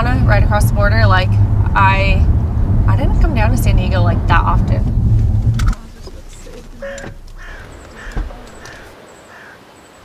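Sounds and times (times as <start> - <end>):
birds harsh calls: 5.8 - 10.0.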